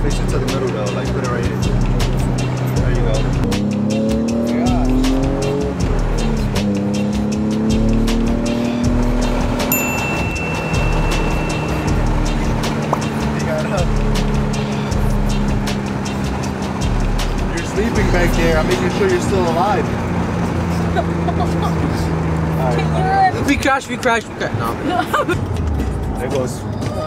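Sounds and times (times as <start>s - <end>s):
car engine accelerating: 0.0s - 27.0s.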